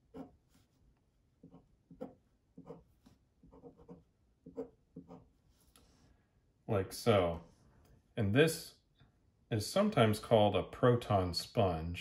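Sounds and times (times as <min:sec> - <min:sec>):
pen scratching on paper: 0:00.0 - 0:00.8, 0:01.4 - 0:06.0.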